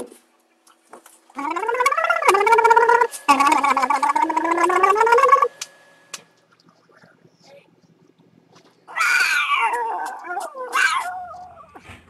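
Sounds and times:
man gargling: 0:01.4 - 0:05.5.

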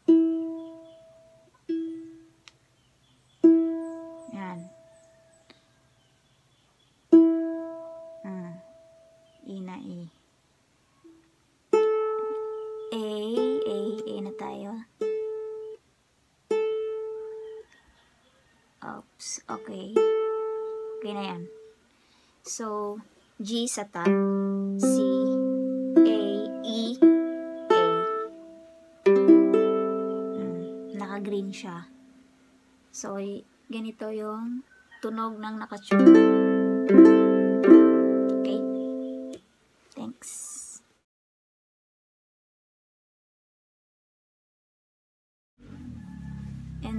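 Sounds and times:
ukulele string plucked: 0:00.0 - 0:02.2, 0:24.0 - 0:32.1, 0:35.9 - 0:39.4.

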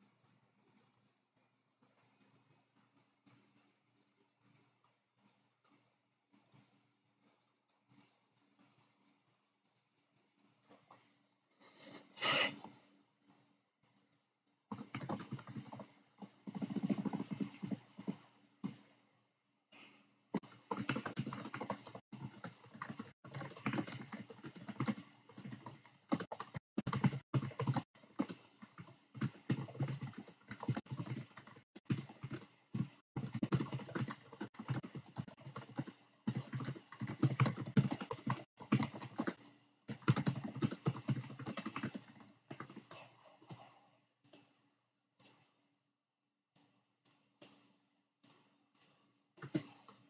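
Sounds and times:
keyboard typing: 0:00.0 - 0:11.2, 0:14.7 - 0:18.9, 0:20.3 - 0:44.6, 0:46.5 - 0:50.0.

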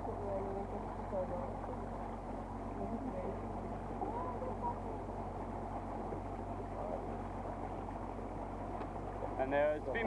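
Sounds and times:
boat motor running: 0:00.0 - 0:10.0
water washing along hull: 0:00.0 - 0:10.0.

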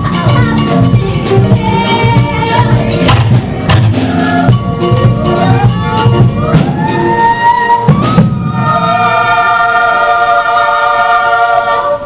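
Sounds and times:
percussion hit: 0:00.0 - 0:09.0
chorus singing held chord: 0:08.5 - 0:12.0.

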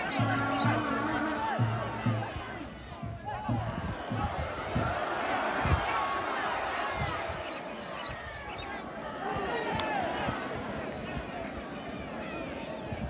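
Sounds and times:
low thuds: 0:00.0 - 0:05.9
distant shouts and calls: 0:00.0 - 0:13.0.

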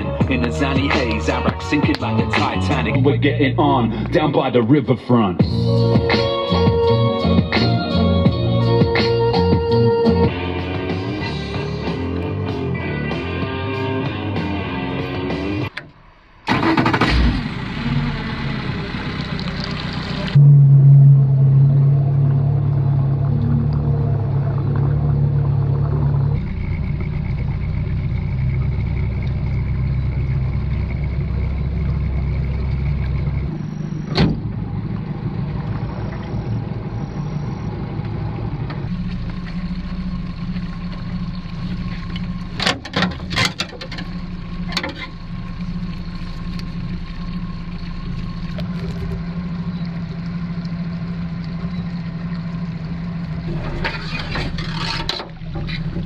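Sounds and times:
outboard motor running: 0:00.0 - 0:15.8, 0:16.5 - 0:56.0.

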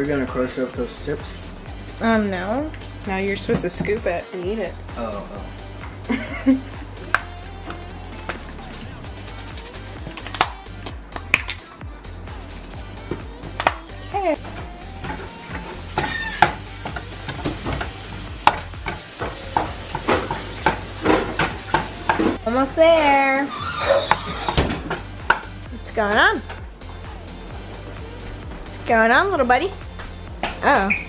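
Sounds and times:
background music: 0:00.0 - 0:31.0
meat sizzling: 0:12.7 - 0:28.5
spatula scraping frying pan: 0:14.5 - 0:22.4, 0:23.0 - 0:25.6.

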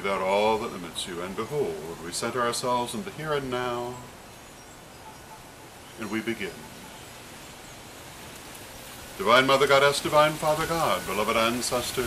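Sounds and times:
outdoor ambience hiss: 0:00.0 - 0:12.0.

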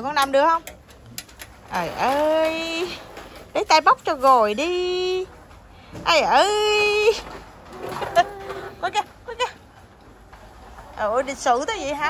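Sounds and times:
young child's wavering vocal sounds: 0:07.7 - 0:09.0.

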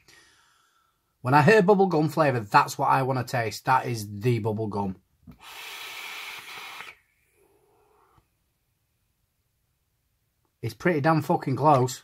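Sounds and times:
vape inhale hissing: 0:05.3 - 0:08.2
vapour exhale: 0:05.3 - 0:08.3.

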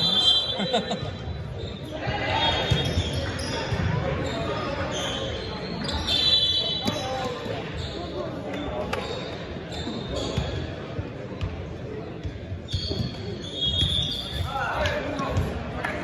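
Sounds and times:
voices echoing in a gym: 0:00.0 - 0:16.0.

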